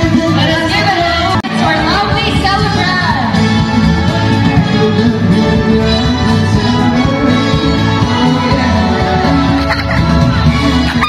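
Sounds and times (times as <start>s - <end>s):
dance music with steady bass: 0.0s - 11.0s.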